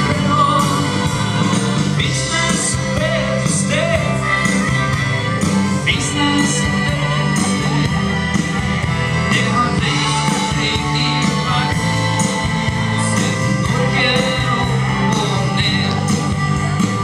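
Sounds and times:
man singing: 0.0 - 7.9, 9.2 - 17.0
drums steady beat: 0.0 - 17.0
walking bass line: 0.0 - 17.0.

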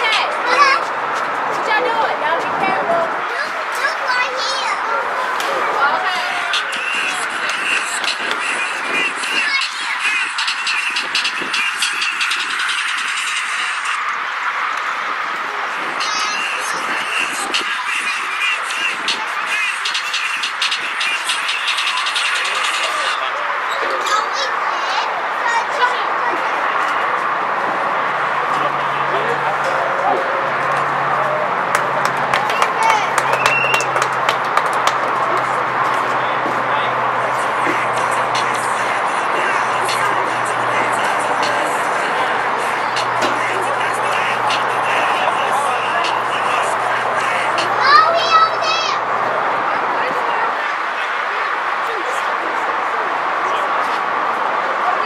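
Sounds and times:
indistinct voices calling out: 0.0 - 55.0
outdoor background noise: 0.0 - 55.0.

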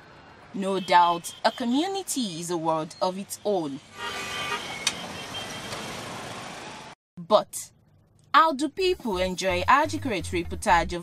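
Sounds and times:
motorcycles and cars passing: 3.3 - 7.0
short horn toot: 3.9 - 5.8.

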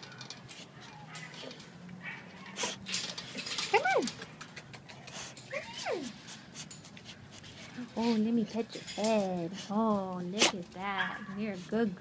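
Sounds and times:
small clicks and rattles: 0.0 - 5.5
dog whining: 5.4 - 6.2.

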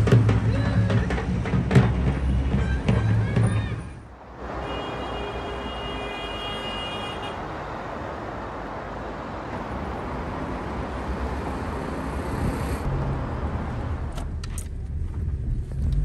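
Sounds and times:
passing vehicles rushing: 0.0 - 16.0
vehicle horn: 4.5 - 7.4.

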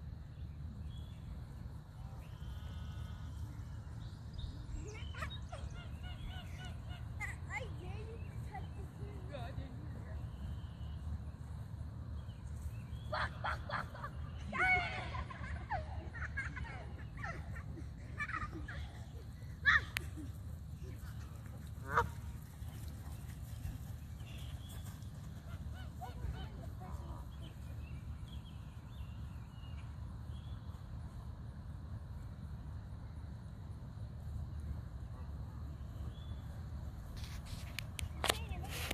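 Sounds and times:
geese honking: 21.8 - 22.4.

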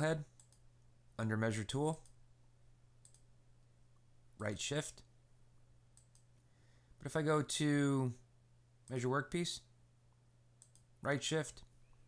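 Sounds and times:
low steady hum: 0.0 - 12.0
computer mouse clicks: 0.3 - 0.6, 3.0 - 3.3, 5.9 - 6.3, 10.6 - 10.9.

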